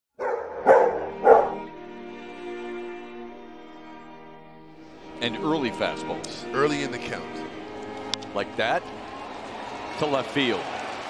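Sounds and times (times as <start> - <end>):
dog barks: 0.2 - 1.7
held musical chord: 0.2 - 9.0.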